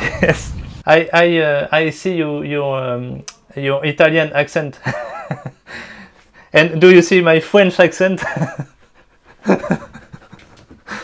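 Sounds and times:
man laughing breathily: 0:00.0 - 0:00.6, 0:08.2 - 0:11.0.

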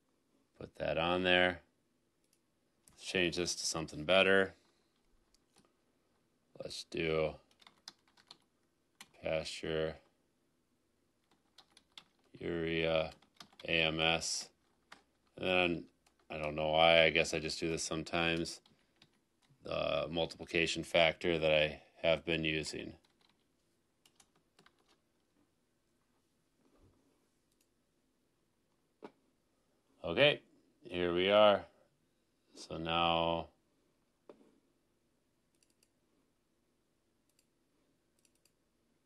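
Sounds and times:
computer keyboard keystrokes: 0:07.5 - 0:08.4, 0:11.2 - 0:12.3, 0:13.1 - 0:13.6, 0:24.0 - 0:25.0
keyboard and mouse clicks: 0:23.0 - 0:25.0, 0:35.5 - 0:36.0, 0:38.2 - 0:38.6.

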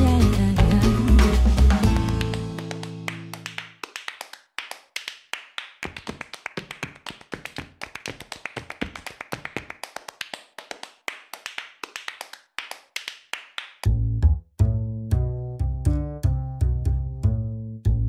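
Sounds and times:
bass and band playing: 0:00.0 - 0:03.1, 0:13.8 - 0:18.0
rapid sharp percussion taps: 0:01.4 - 0:13.9.

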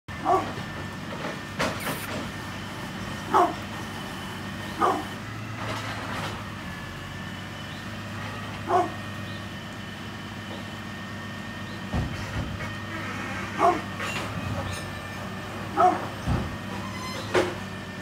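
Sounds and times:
dog barking: 0:00.2 - 0:00.6, 0:03.3 - 0:03.6, 0:04.8 - 0:05.2, 0:08.6 - 0:09.0, 0:13.5 - 0:13.9, 0:15.7 - 0:16.1.

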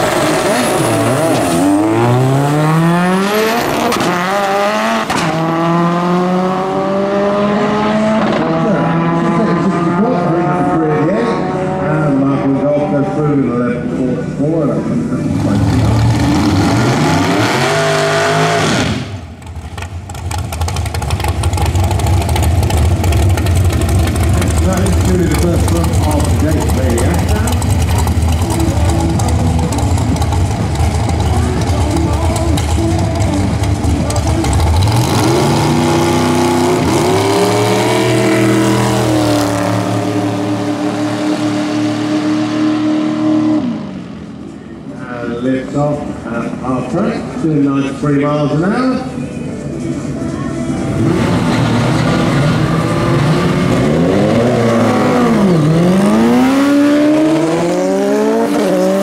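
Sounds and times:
dragster engine rumbling and revving: 0:00.0 - 0:50.2, 0:50.8 - 0:59.0
race car engine passing: 0:00.0 - 0:59.0.

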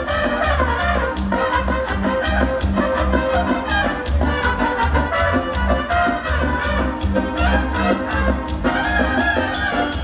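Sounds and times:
brass band dance music: 0:00.0 - 0:10.0.

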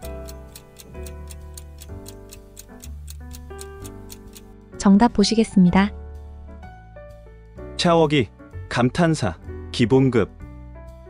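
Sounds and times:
countdown clock ticking quickly: 0:00.0 - 0:04.5
soft background music: 0:00.0 - 0:11.0.

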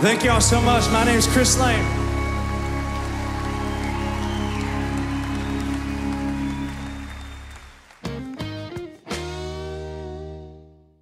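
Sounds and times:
country band chord ringing: 0:00.0 - 0:07.2
audience applause: 0:00.0 - 0:08.8.

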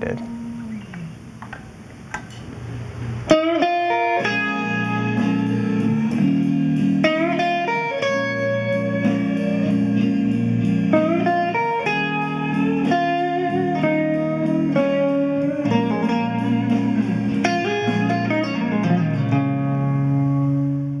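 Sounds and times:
jazzy blues guitar solo: 0:00.0 - 0:01.8, 0:02.5 - 0:21.0
backing band: 0:03.3 - 0:21.0.

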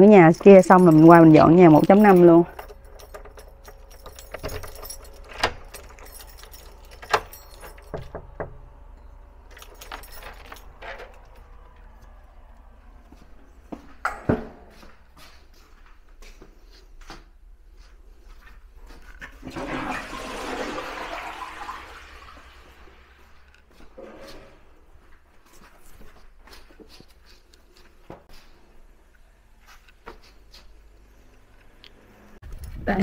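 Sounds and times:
keys jangling on keyring: 0:00.0 - 0:12.6
key clicking in door lock: 0:01.9 - 0:11.7
toilet flushing: 0:19.4 - 0:23.4.

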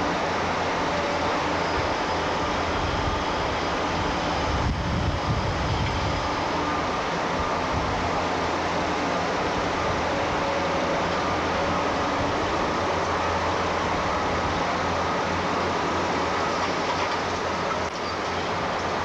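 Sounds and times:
heavy machinery running: 0:00.0 - 0:19.0.

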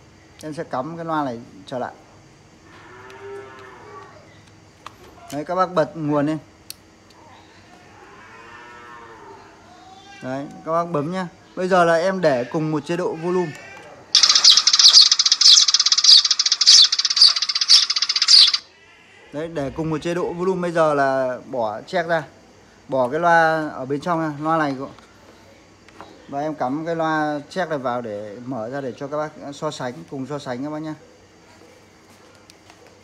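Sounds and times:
recorded sparrow chirps through speaker: 0:14.2 - 0:18.6.

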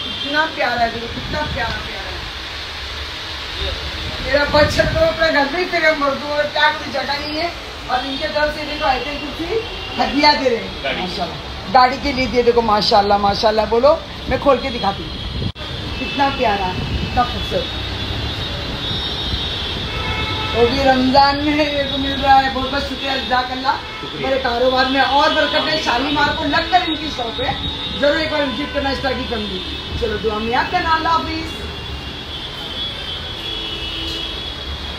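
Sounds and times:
shop background rumble and hiss: 0:00.0 - 0:34.9.

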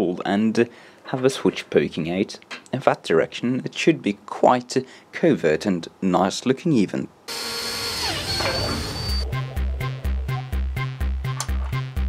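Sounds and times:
cordless drill whining: 0:07.3 - 0:09.2.

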